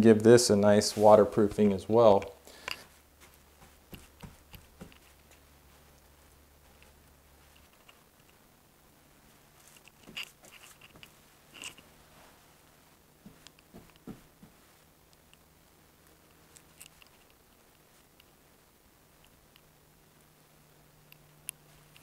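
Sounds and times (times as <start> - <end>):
paintbrush strokes on wall: 0.7 - 1.7, 2.8 - 8.1.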